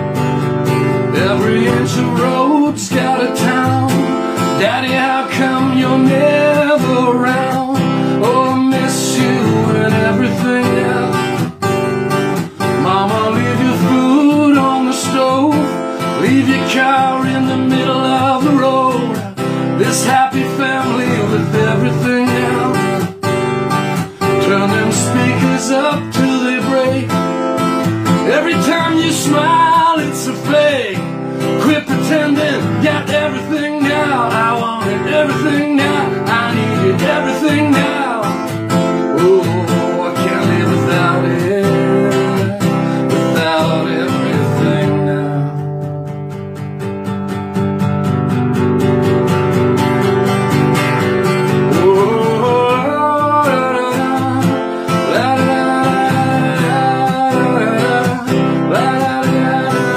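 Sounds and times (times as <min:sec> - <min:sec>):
acoustic guitar strumming: 0:00.0 - 0:59.9
man singing: 0:00.7 - 0:23.2, 0:23.8 - 0:46.0, 0:51.0 - 0:59.9.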